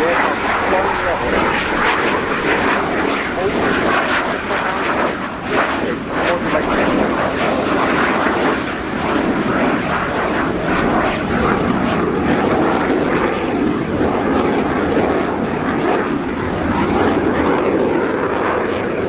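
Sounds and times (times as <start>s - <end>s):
jet engine roar: 0.0s - 19.0s.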